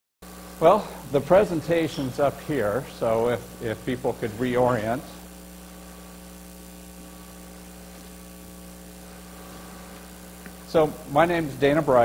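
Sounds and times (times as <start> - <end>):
electrical mains hum: 0.2 - 12.0.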